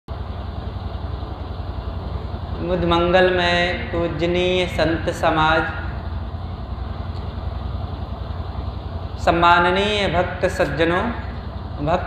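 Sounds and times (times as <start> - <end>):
pulsing low hum: 0.1 - 12.0.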